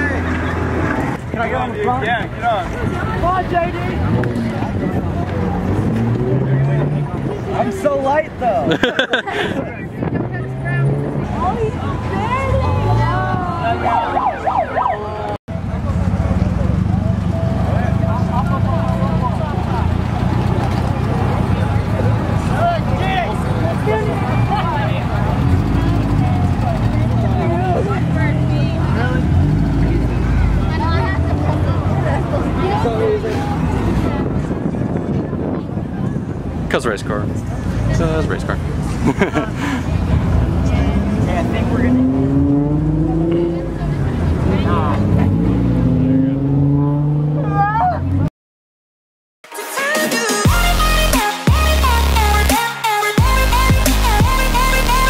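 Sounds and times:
crowd chatter and calls: 0.0s - 48.3s
car engine idling: 15.5s - 29.2s
race car engine running: 24.8s - 30.7s.

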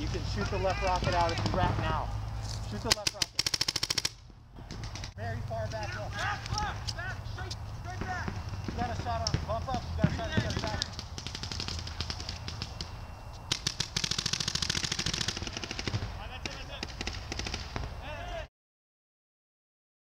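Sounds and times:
players shouting: 0.0s - 3.0s, 4.7s - 10.9s, 17.9s - 18.5s
paintball markers firing: 0.8s - 1.7s, 2.8s - 5.2s, 6.2s - 18.0s.

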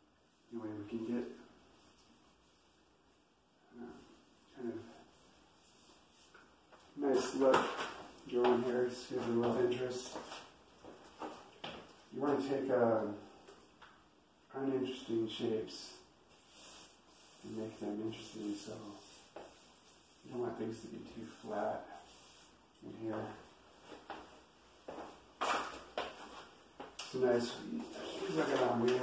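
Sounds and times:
paintbrush scraping in paint: 16.3s - 20.3s, 21.3s - 22.6s.

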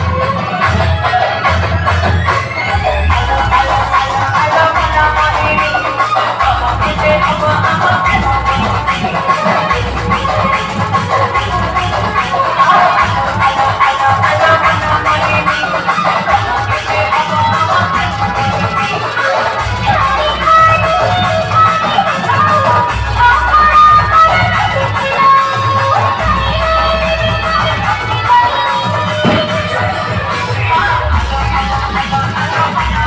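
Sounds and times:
electronic dance music: 0.0s - 33.0s.

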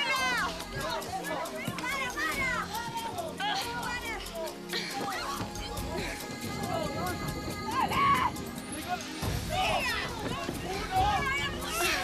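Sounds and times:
background music: 0.0s - 12.0s
people shouting and yelling: 0.0s - 12.0s.

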